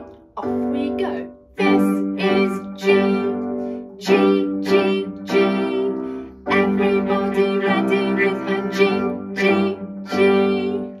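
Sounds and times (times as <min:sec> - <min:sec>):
cello bowing: 0:01.6 - 0:11.0.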